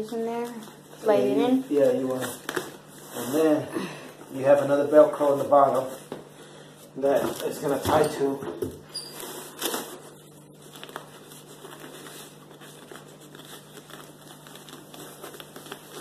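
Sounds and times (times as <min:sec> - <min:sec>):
fabric and velcro rustling: 0:09.0 - 0:16.0.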